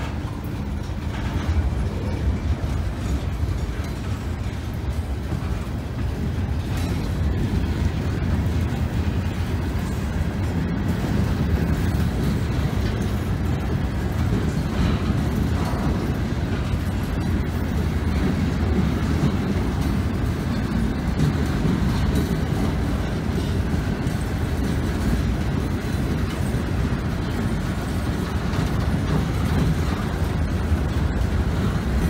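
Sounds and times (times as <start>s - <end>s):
freight train wheels rumbling: 0.0s - 32.0s.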